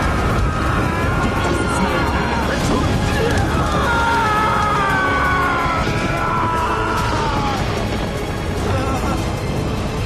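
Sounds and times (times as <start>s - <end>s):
dramatic score: 0.0s - 10.0s
low rumble of fire: 0.0s - 10.0s.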